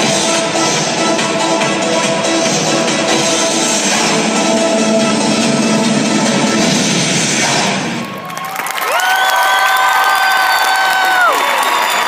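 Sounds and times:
recorded performance music: 0.0s - 8.1s
crowd cheering and applause: 7.8s - 12.0s
long high woo cheer: 8.0s - 12.0s.

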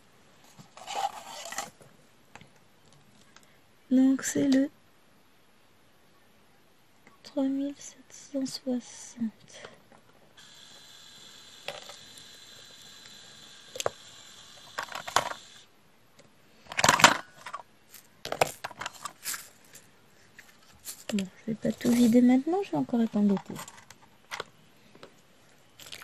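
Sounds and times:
plastic drills clicking and rattling: 10.4s - 15.6s.

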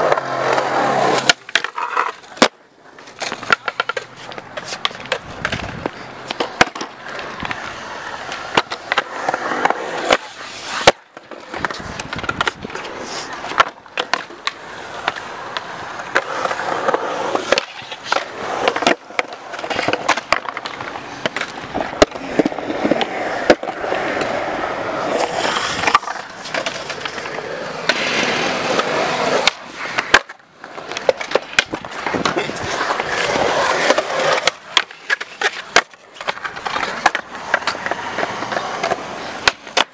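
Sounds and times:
skateboard clacking: 0.0s - 39.9s
skateboard scraping metal coping: 0.0s - 39.9s
skateboard wheels rolling on concrete: 0.0s - 39.9s.

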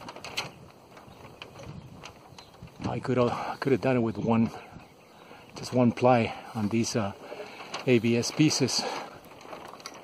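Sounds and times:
frame clicks and creaks: 0.0s - 3.4s, 6.7s - 10.0s.

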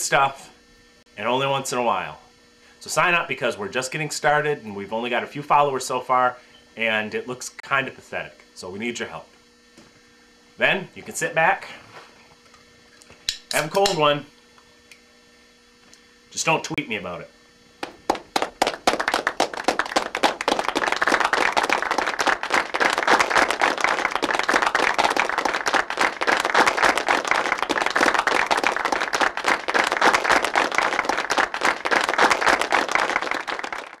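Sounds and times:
applause: 17.8s - 34.0s.

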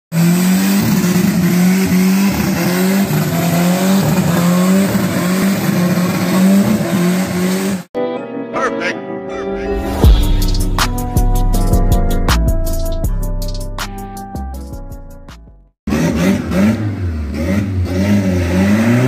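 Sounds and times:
car engine at high revs: 0.1s - 7.9s, 15.9s - 19.0s
music: 8.0s - 15.7s.

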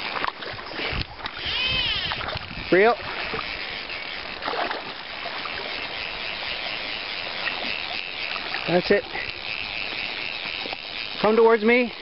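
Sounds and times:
river water rushing: 3.0s - 11.2s.

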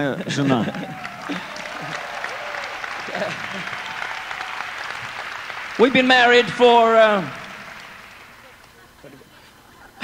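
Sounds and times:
audience clapping: 0.3s - 9.2s.

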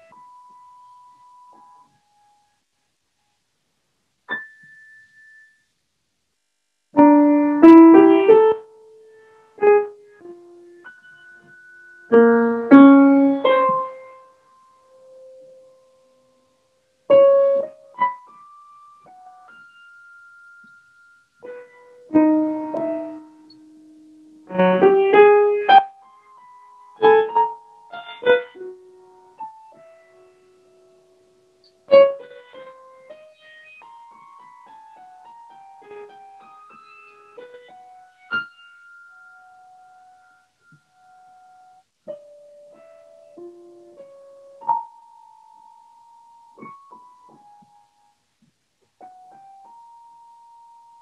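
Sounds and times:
grand piano notes ringing: 17.1s - 47.9s.

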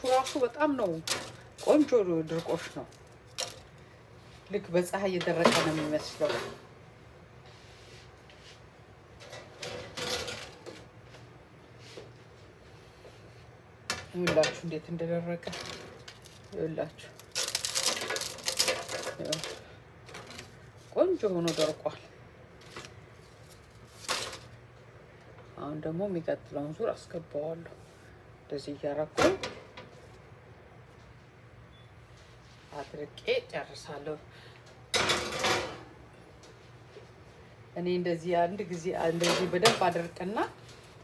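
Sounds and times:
person speaking: 0.0s - 3.0s, 18.8s - 19.7s, 20.9s - 22.1s
dried bread crackling: 0.0s - 4.9s, 15.2s - 22.0s, 22.6s - 24.6s.

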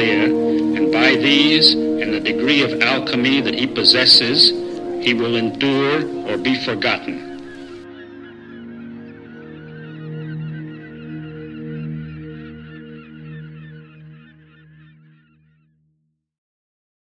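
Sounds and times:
steady low drone: 0.0s - 14.4s
flock of birds calling: 0.0s - 15.6s.

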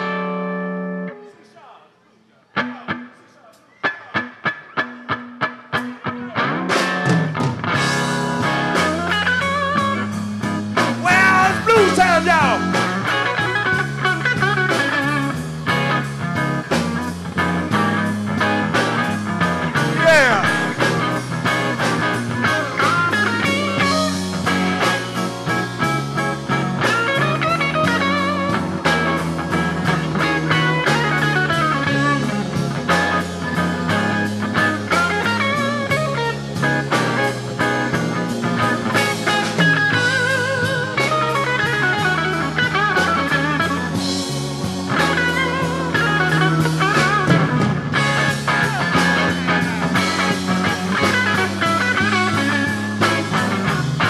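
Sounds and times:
blues band playing: 0.0s - 1.3s, 2.5s - 54.0s
electric guitar lead: 0.0s - 1.4s, 2.5s - 54.0s
walking bass line: 6.5s - 54.0s.

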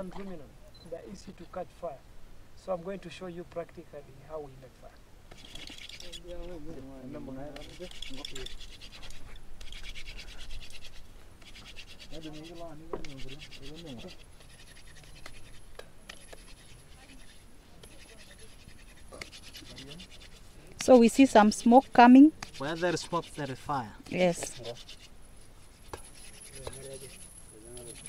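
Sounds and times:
wooden spindle grinding on board: 5.3s - 28.0s.

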